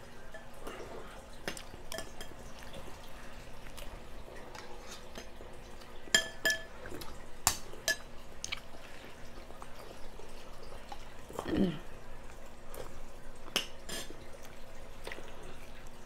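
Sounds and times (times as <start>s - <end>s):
cutlery clinking against bowl: 6.1s - 6.8s, 7.4s - 8.1s.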